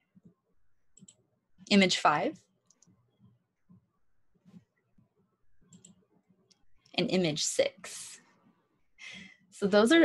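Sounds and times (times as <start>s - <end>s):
computer mouse clicks: 0.2s - 1.2s, 2.6s - 4.8s, 5.6s - 7.0s.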